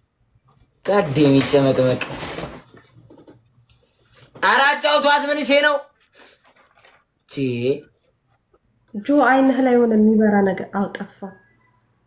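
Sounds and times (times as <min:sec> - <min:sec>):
man speaking: 0:00.8 - 0:02.0, 0:04.4 - 0:06.0, 0:07.3 - 0:08.0.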